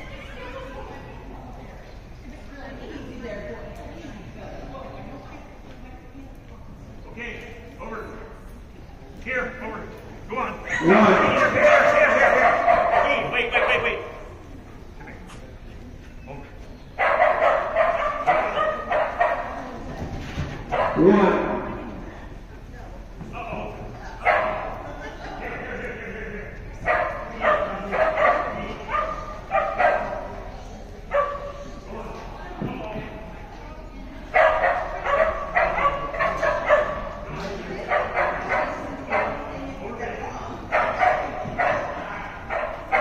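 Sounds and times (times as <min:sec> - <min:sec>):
dog barking: 0:11.6 - 0:13.9, 0:17.0 - 0:19.6, 0:20.7 - 0:21.1, 0:24.2 - 0:24.8, 0:26.8 - 0:30.4, 0:31.1 - 0:31.6, 0:34.3 - 0:37.2, 0:37.8 - 0:39.5, 0:40.7 - 0:43.0.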